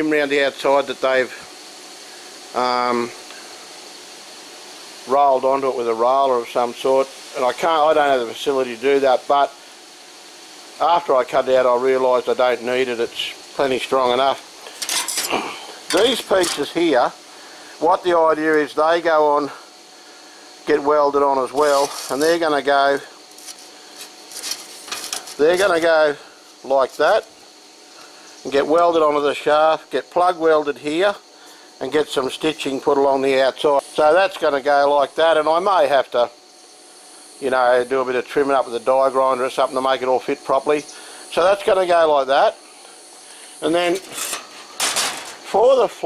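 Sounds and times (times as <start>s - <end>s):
outdoor background hiss: 0.0s - 46.0s
metal plate sliding over metal: 14.7s - 16.7s, 21.6s - 22.4s, 23.4s - 25.8s, 44.0s - 45.5s
metal scraping and tapping: 14.7s - 16.8s, 23.4s - 25.9s, 44.0s - 45.5s.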